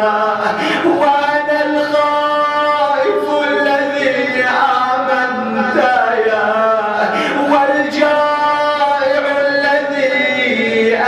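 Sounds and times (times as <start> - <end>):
man chanting melodically: 0.0 - 11.0.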